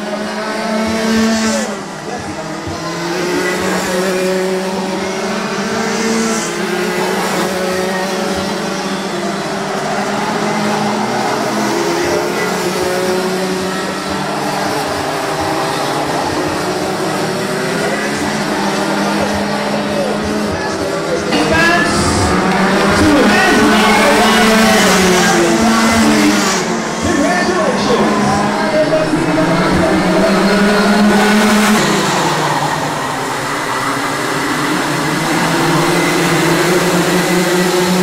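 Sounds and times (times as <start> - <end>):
racing kart engines: 0.0 - 38.0.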